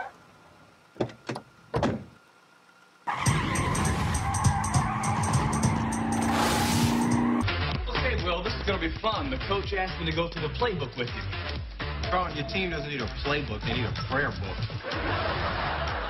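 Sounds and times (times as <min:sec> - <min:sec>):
cartoon engine running: 0:03.1 - 0:07.4
tyres skidding: 0:03.1 - 0:07.4
music: 0:03.2 - 0:16.0.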